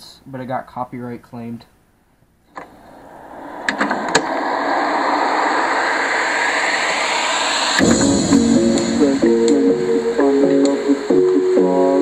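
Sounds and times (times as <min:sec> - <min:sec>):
rising noise: 0:02.5 - 0:12.0
melody with bass from speaker: 0:07.8 - 0:12.0.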